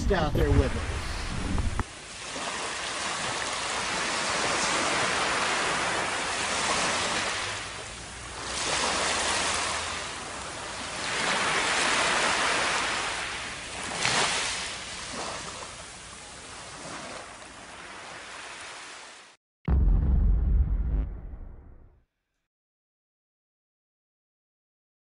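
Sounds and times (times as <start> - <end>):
waves washing up a beach: 0.4 - 19.4.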